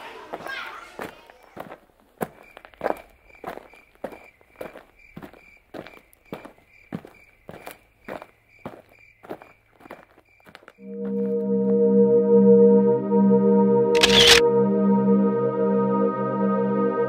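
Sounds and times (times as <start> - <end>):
footsteps walking: 0.0 - 11.4.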